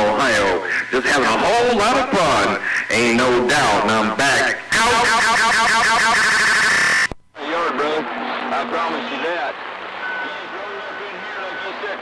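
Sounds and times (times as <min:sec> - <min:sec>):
distorted radio transmission: 0:00.0 - 0:12.0
garbled radio voice: 0:00.0 - 0:12.0
steady radio whistle: 0:04.6 - 0:07.2, 0:09.9 - 0:12.0.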